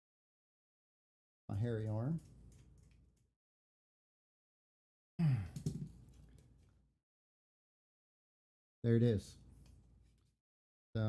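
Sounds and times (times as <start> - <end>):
man sighing: 5.2 - 5.8.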